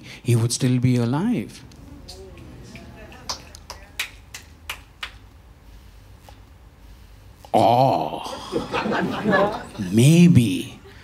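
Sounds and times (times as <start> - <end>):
finger snaps: 2.1 - 5.2.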